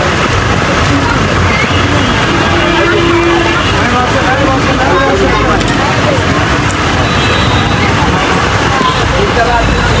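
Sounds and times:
many people talking: 0.0s - 10.0s.

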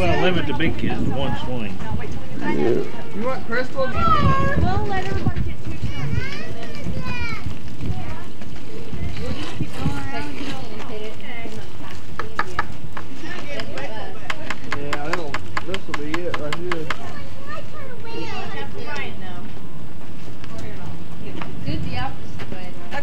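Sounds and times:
children and adults chattering: 0.0s - 23.0s.

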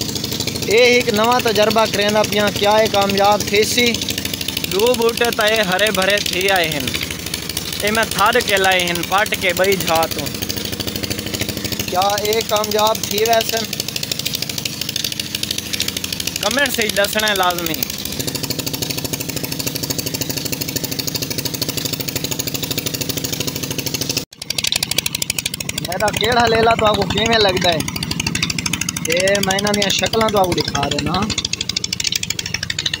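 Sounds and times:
engine running with fast pulse: 0.0s - 33.0s
person speaking: 0.6s - 10.4s, 11.7s - 13.8s, 16.4s - 18.0s, 25.8s - 27.9s, 29.0s - 31.4s.

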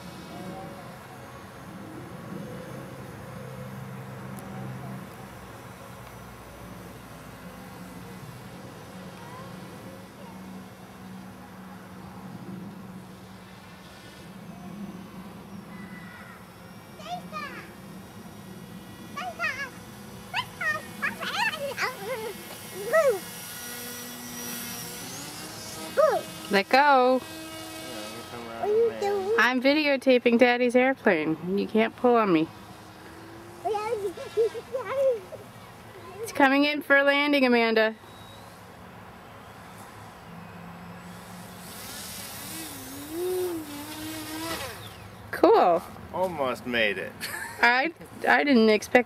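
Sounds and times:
model plane electric motor whine: 0.0s - 34.8s, 37.4s - 45.4s
child making whiny sounds: 20.4s - 23.3s, 26.0s - 26.3s, 42.6s - 44.8s.

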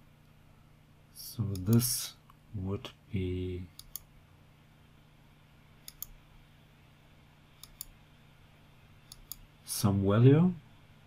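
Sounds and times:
faint low hum: 0.0s - 11.0s
computer mouse clicking: 1.5s - 1.9s, 3.7s - 4.1s, 5.8s - 6.2s, 7.6s - 8.0s, 9.0s - 9.4s.

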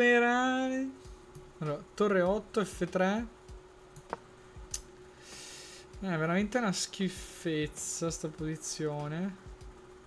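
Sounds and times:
faint steady hum: 0.0s - 10.0s
breathy hiss: 5.1s - 6.0s.

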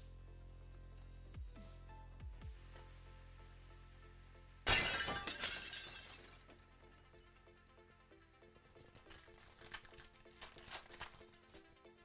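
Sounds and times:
background music with beat: 0.0s - 4.6s
foil wrapper crinkling: 8.8s - 11.8s.

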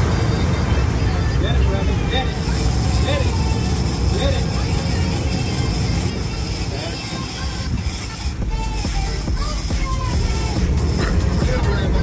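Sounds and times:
boat engine rumble: 0.0s - 12.0s
wind: 0.0s - 12.0s.

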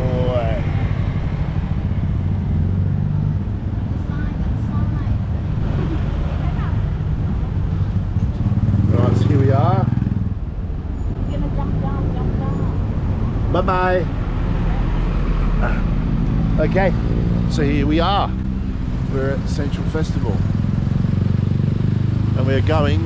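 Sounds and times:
engine and road rumble: 0.0s - 23.0s
faint voices: 15.5s - 15.9s.

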